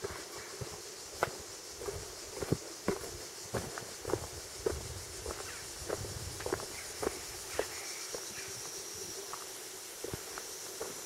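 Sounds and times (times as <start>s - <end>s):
footsteps on rocky dirt trail: 0.0s - 11.0s.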